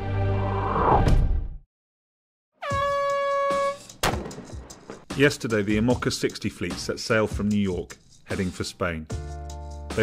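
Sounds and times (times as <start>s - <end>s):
air horn blast: 2.6s - 4.0s.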